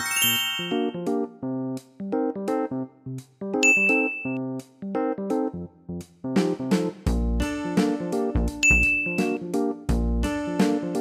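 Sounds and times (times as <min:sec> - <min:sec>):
high chime ringing: 0:00.0 - 0:01.0, 0:03.6 - 0:04.4, 0:08.6 - 0:09.4
light background music: 0:06.4 - 0:11.0.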